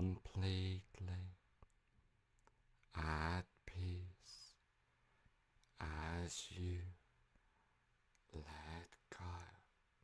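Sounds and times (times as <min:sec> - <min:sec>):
man speaking softly: 0:00.0 - 0:01.4, 0:02.9 - 0:04.6, 0:05.7 - 0:07.0, 0:08.2 - 0:09.8.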